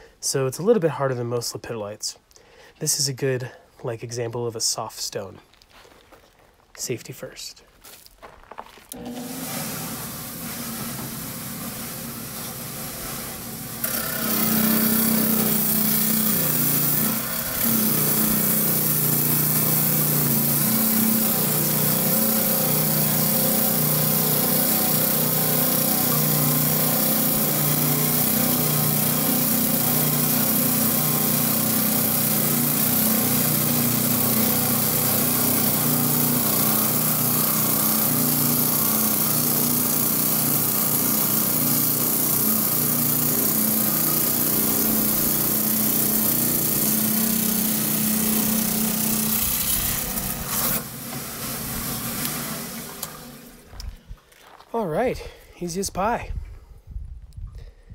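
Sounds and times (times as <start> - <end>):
trim saw motor hum: 8.9 - 53.9
diamond blade cutting stone: 13.8 - 50.8.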